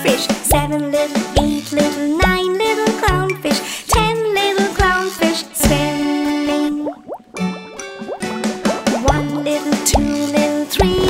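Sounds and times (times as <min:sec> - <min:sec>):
children's song music: 0:00.0 - 0:11.0
cartoon bubble bloops: 0:06.6 - 0:09.2.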